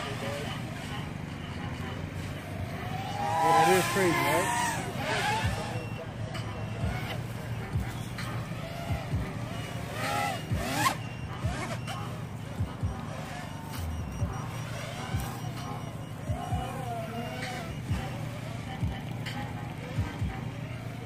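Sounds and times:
quadcopter motors whining: 0.0s - 21.0s.

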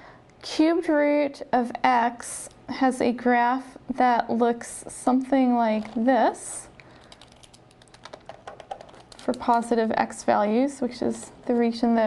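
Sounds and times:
stylus tapping on drawing tablet: 8.0s - 9.3s.

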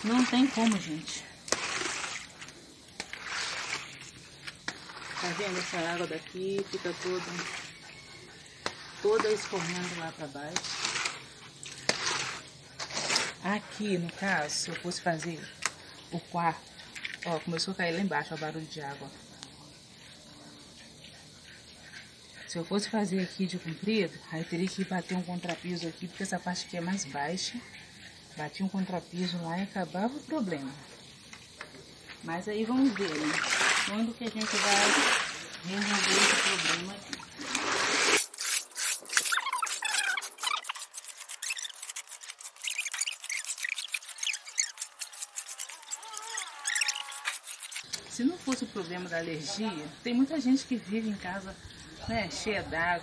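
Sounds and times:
broom scraping wet concrete: 0.0s - 15.3s, 32.1s - 49.8s
water trickling from roof: 0.0s - 19.1s, 19.9s - 52.9s.

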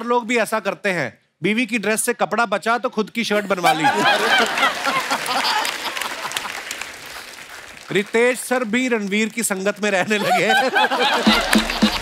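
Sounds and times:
audience laughter: 3.4s - 6.6s, 10.0s - 12.0s
audience applauding: 3.9s - 12.0s.

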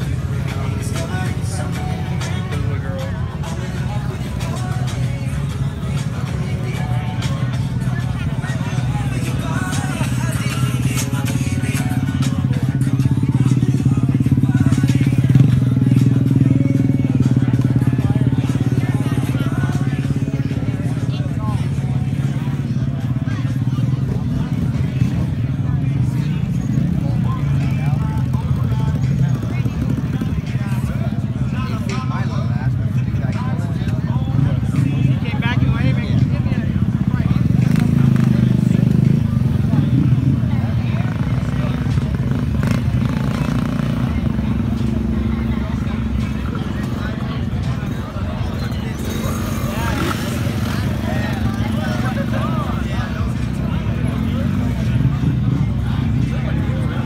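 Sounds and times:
motorcycle engines droning: 0.0s - 57.0s
people talking: 0.0s - 57.0s.

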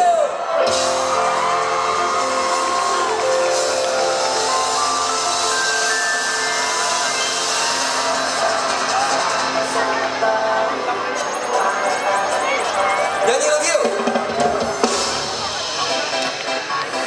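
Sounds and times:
drums: 0.0s - 17.0s
keyboard: 0.0s - 17.0s
electric guitars: 0.5s - 13.2s.

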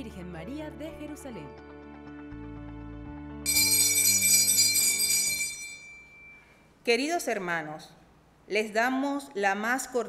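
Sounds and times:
background music: 0.0s - 6.4s
cluster of small bells ringing: 3.5s - 6.6s.

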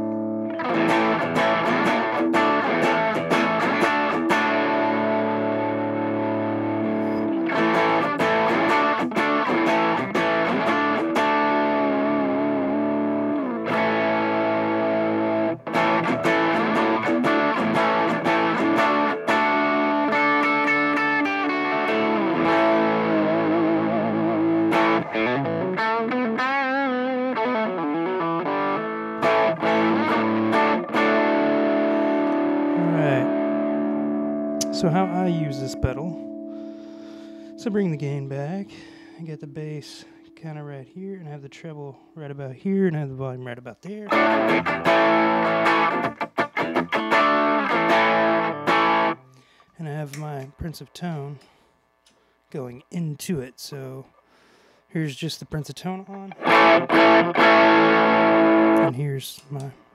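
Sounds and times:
overdriven electric guitar chords: 0.0s - 52.5s, 56.0s - 59.9s.

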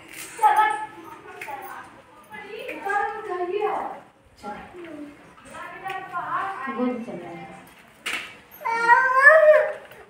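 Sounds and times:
small child whining: 8.6s - 10.0s.

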